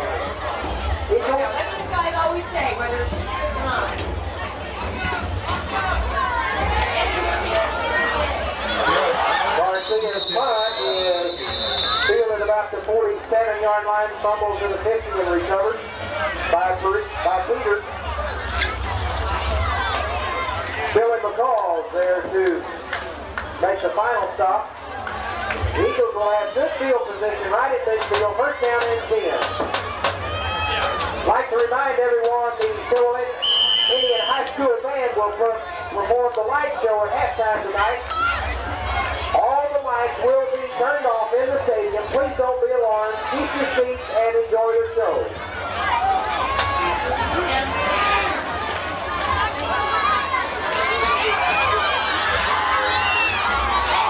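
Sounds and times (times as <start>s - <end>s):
voices chattering: 0.0s - 54.0s
short high whistle: 9.8s - 12.1s, 33.4s - 34.4s.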